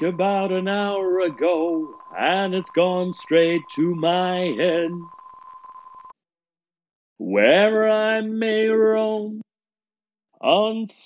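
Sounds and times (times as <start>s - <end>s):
faint ticking: 0.0s - 6.1s
high electronic tone: 0.0s - 6.2s.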